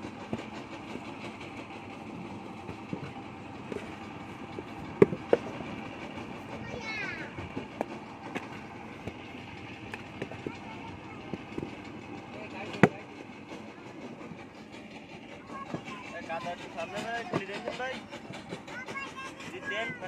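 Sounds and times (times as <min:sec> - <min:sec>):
steady background hum: 0:00.0 - 0:20.0.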